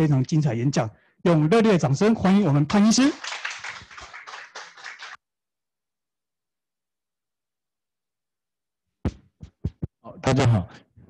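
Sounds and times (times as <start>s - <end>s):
audience applauding: 2.9s - 5.2s.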